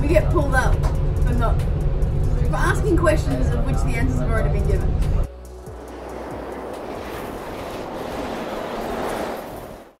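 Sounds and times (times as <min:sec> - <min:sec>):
steady rushing noise: 0:02.9 - 0:10.0.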